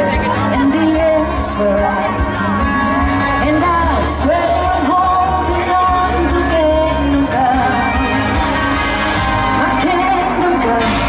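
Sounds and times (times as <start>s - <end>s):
woman singing long held notes: 0.0s - 8.2s, 9.6s - 11.0s
live pop band: 0.0s - 11.0s
steady bass line: 0.0s - 11.0s.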